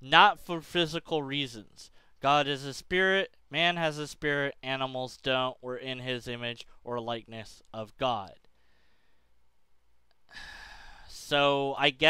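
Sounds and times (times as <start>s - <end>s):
man breathing out: 8.6s - 9.4s, 10.3s - 11.1s.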